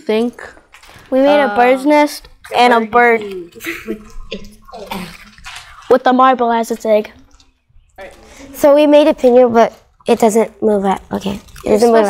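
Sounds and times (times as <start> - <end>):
crumpled paper rustling: 0.5 - 1.6.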